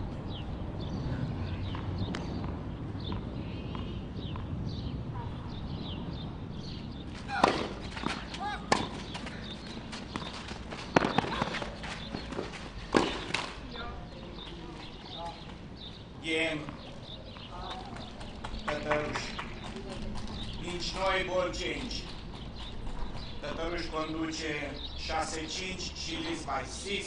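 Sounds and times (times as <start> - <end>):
racket hitting tennis ball: 7.2 - 13.6.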